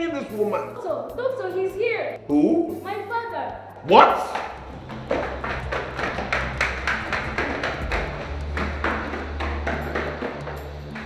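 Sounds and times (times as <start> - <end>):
footsteps hurrying down stairs: 4.3 - 11.0.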